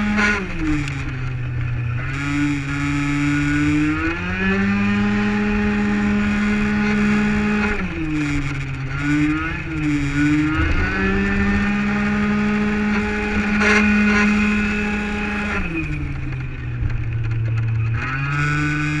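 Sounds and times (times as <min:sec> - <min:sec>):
two-stroke scooter engine revving: 0:00.0 - 0:19.0.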